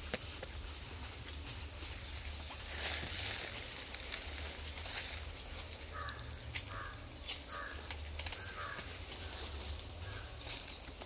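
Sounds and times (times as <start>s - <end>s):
steady high hiss: 0.0s - 11.0s.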